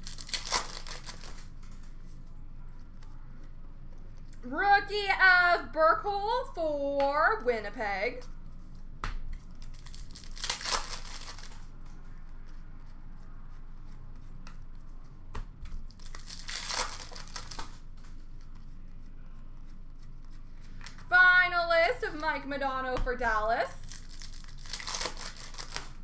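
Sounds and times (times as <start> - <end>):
plastic wrappers tearing and crinkling: 0.0 - 1.6, 9.5 - 11.7, 15.9 - 17.8, 23.7 - 26.0.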